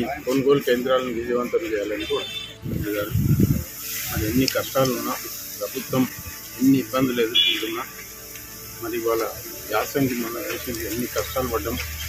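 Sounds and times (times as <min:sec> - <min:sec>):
man speaking: 0:00.0 - 0:03.2, 0:04.1 - 0:07.9, 0:08.8 - 0:11.9
steady background hiss: 0:00.0 - 0:12.0.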